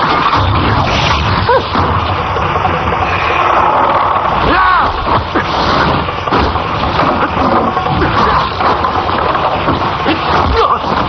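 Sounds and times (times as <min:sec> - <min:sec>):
rushing sound effect: 0:00.0 - 0:07.1.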